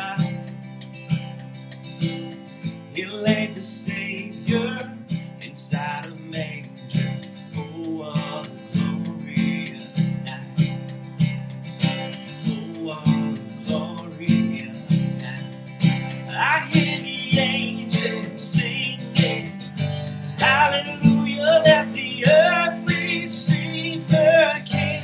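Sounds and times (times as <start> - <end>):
acoustic guitar strumming: 0.0 - 25.0.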